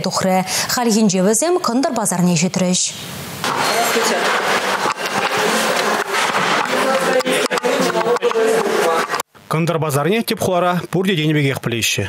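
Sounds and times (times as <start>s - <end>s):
indistinct voices talking: 3.4s - 9.2s.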